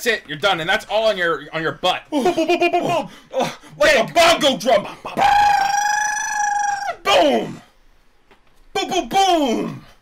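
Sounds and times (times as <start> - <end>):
man's falsetto cry: 5.1 - 7.6.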